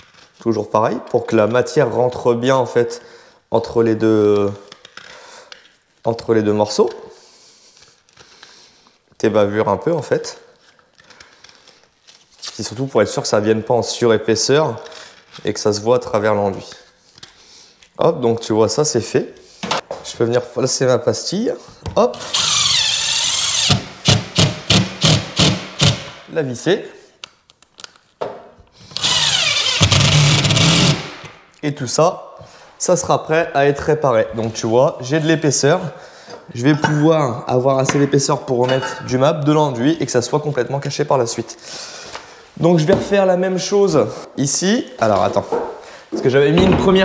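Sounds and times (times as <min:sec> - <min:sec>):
impact driver driving screw: 0:22.2 - 0:26.2, 0:28.9 - 0:31.4.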